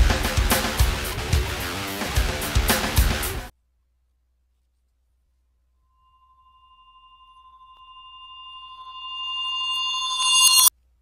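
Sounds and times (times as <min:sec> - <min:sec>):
pulsing synthesized electronic tone: 0:06.0 - 0:10.7.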